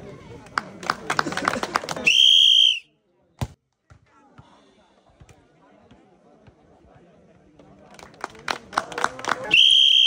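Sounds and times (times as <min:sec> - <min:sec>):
shrill whistle blast: 0:02.1 - 0:02.9.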